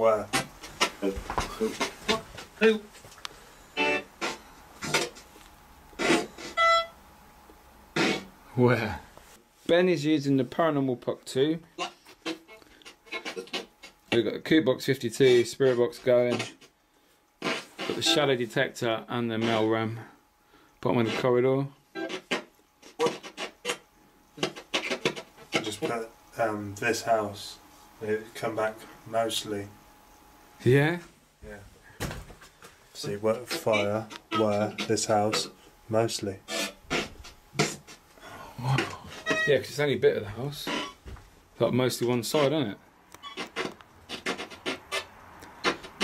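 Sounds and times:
choppy radio broadcast fragments: 0.0s - 3.0s, 3.8s - 5.3s, 5.9s - 6.6s, 7.9s - 8.9s, 9.7s - 16.7s, 17.4s - 20.0s, 20.9s - 30.2s, 33.0s - 38.1s, 38.8s - 46.0s
radio sweeping static snatches: 3.8s - 5.3s, 5.9s - 6.6s, 7.9s - 8.9s, 17.4s - 18.6s, 33.0s - 38.0s
broken voice snatches: 15.3s - 16.7s, 22.0s - 23.8s, 36.5s - 38.0s.

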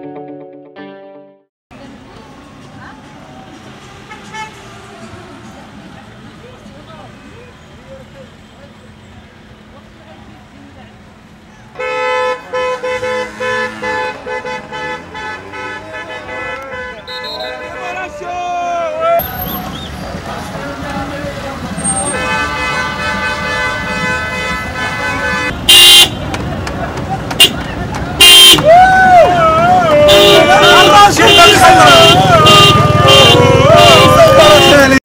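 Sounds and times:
slow-moving cars: 1.7s - 35.0s
voices: 1.7s - 35.0s
car horns honking: 4.0s - 4.8s, 11.7s - 26.6s, 27.2s - 28.8s, 29.4s - 35.0s.

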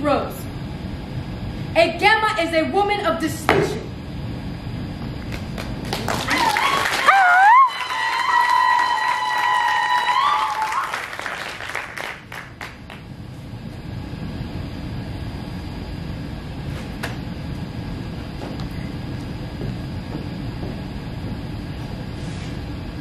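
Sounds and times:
audience clapping: 5.3s - 13.0s.

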